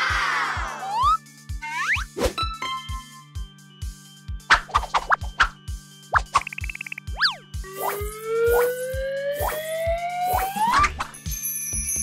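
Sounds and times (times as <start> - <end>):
playful children's music: 0.0 - 12.0
warbling tone: 6.2 - 11.1
rising whistle-like glide: 7.7 - 10.9.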